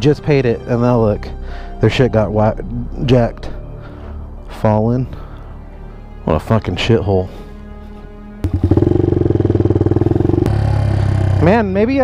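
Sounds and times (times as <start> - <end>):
motorcycle engine pulling away: 8.4 - 12.0.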